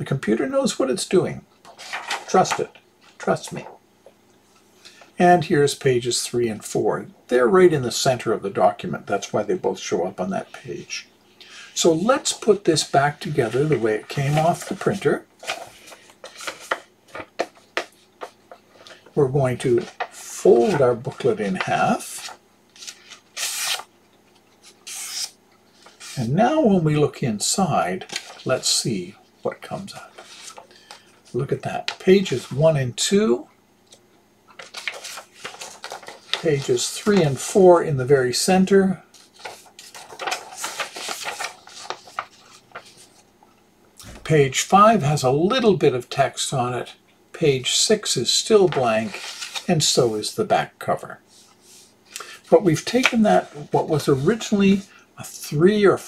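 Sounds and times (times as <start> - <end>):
paper rustling and tapping: 1.6 - 2.8, 13.4 - 19.1, 33.9 - 37.4, 39.1 - 43.2, 52.9 - 53.4.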